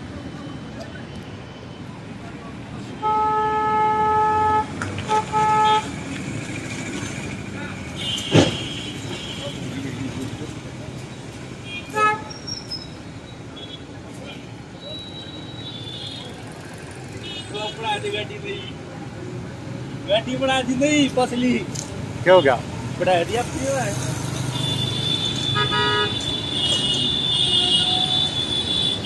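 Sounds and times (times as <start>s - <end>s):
passing vehicles: 0.0s - 29.0s
vehicle horns honking: 3.0s - 5.9s, 8.0s - 9.7s, 11.6s - 12.5s, 24.4s - 29.0s.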